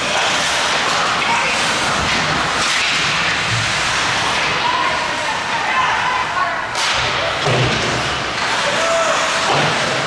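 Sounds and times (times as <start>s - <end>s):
short sharp skate scrape: 0.0s - 4.5s
skates scraping ice: 0.0s - 10.0s.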